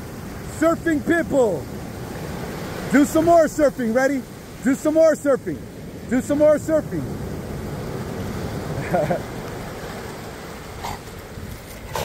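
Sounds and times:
ocean surf breaking: 0.0s - 12.0s.

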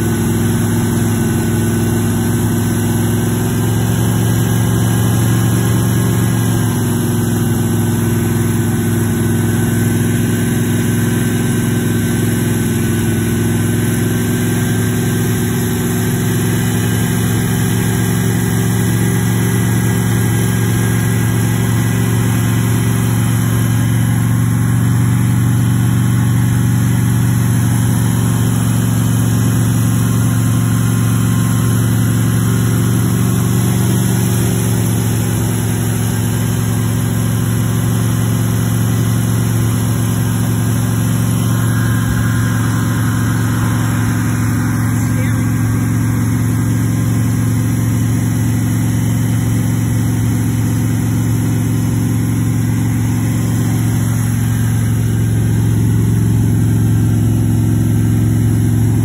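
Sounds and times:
car engine running steadily: 0.0s - 59.0s.

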